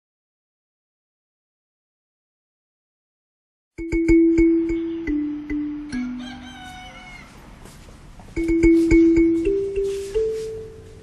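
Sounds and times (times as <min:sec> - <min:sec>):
soft mallet percussion music: 0:03.8 - 0:07.2, 0:08.3 - 0:11.0
rooster crowing: 0:05.7 - 0:07.8.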